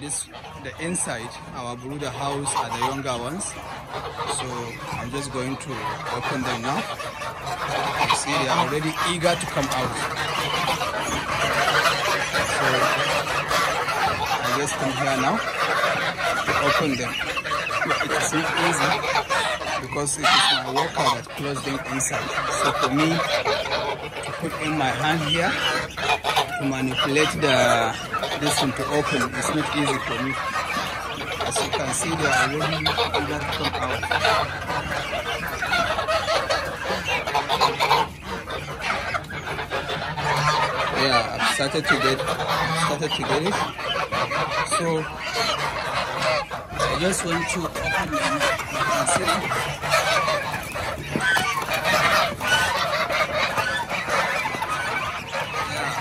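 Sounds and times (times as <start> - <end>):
young geese calling: 0.0 - 56.0.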